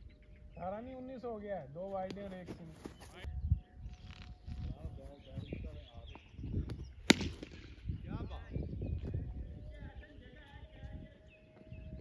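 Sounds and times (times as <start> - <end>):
sharp crack: 7.0 - 7.8.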